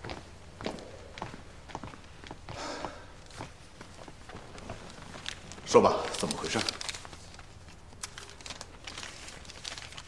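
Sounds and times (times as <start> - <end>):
footsteps in dress shoes: 0.0 - 5.8.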